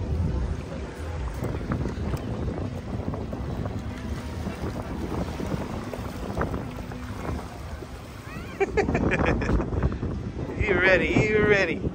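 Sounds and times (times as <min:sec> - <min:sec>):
wind buffeting microphone: 0:00.0 - 0:11.9.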